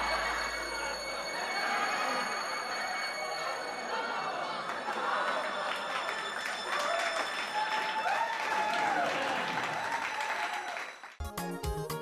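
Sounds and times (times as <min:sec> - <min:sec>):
people laughing: 0:00.0 - 0:10.0
people clapping: 0:00.0 - 0:11.2.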